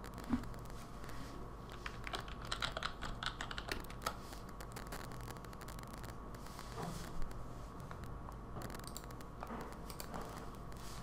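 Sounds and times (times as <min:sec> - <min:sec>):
keyboard typing: 0:01.7 - 0:06.2, 0:08.6 - 0:10.6.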